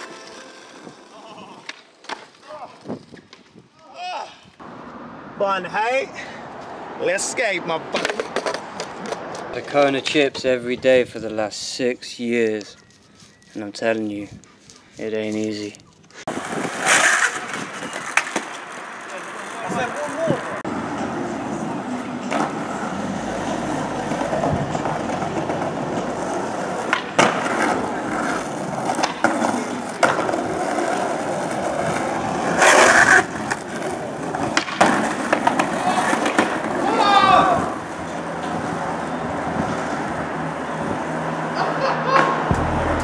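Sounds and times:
skateboard wheels rolling on asphalt: 0.0s - 42.5s
skateboard clacks: 7.9s - 10.0s, 16.3s - 20.5s, 23.4s - 37.0s.

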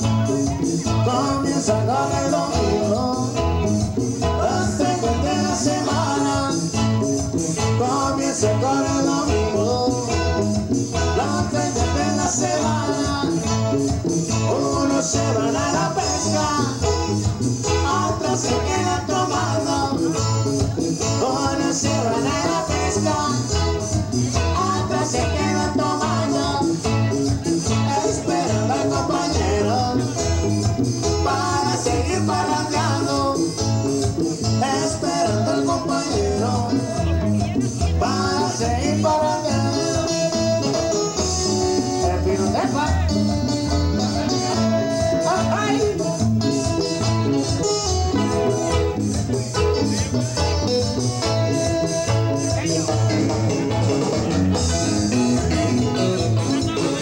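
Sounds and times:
live band playing latin dance music: 0.0s - 57.0s.

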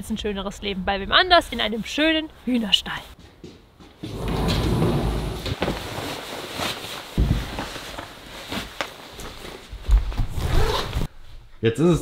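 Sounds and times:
jacket fabric rustling: 4.0s - 11.1s
zipper being pulled open: 10.3s - 11.1s.

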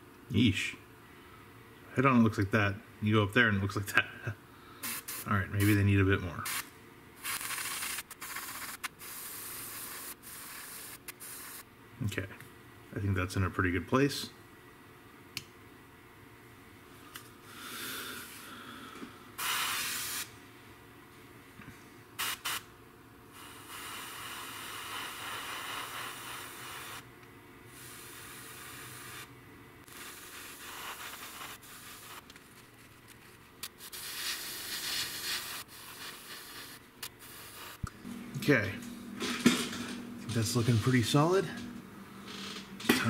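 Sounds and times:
airbrush spraying hiss: 4.8s - 5.8s, 6.5s - 11.6s, 19.4s - 20.3s, 22.2s - 22.6s, 23.4s - 27.0s, 27.8s - 32.2s, 33.6s - 37.9s.

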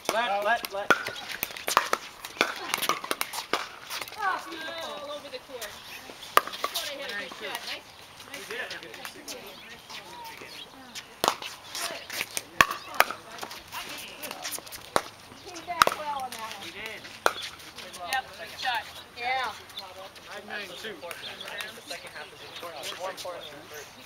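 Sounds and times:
paddles hitting plastic ball: 0.0s - 4.3s, 6.3s - 7.5s, 11.2s - 15.2s, 15.8s - 18.3s.

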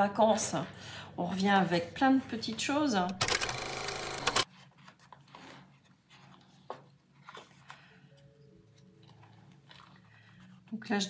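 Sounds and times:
paper rustling and clicking: 4.2s - 10.5s.

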